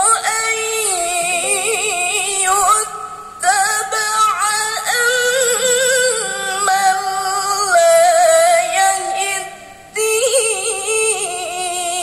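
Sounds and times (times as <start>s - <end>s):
girl reciting melodically: 0.0s - 12.0s.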